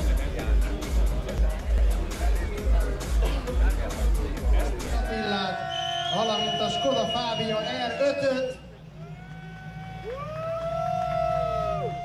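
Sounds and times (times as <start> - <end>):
rally car engine rumbling: 0.0 - 12.0.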